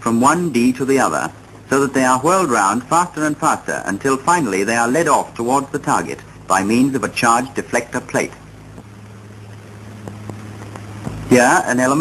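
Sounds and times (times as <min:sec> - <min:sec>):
film soundtrack hum and hiss: 0:00.0 - 0:12.0.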